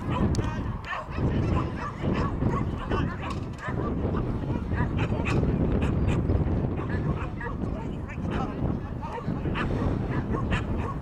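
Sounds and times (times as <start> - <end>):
dogs barking: 0.0 - 11.0.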